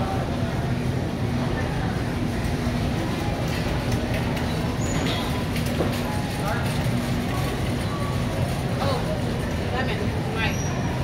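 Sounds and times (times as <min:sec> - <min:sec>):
faint voices of shoppers: 0:00.0 - 0:11.0.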